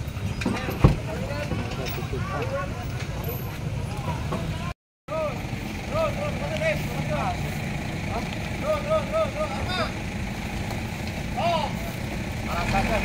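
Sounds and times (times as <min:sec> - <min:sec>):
vehicle engine rumbling: 0:00.0 - 0:13.0
people talking in background: 0:00.3 - 0:10.0.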